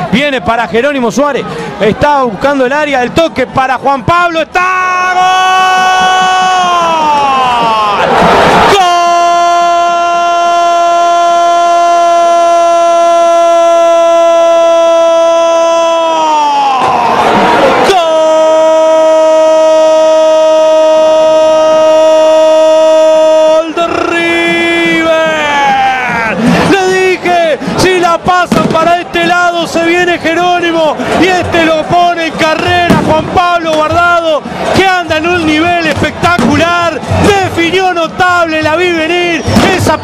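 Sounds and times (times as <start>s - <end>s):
man talking excitedly: 0.0s - 16.9s, 17.8s - 40.0s.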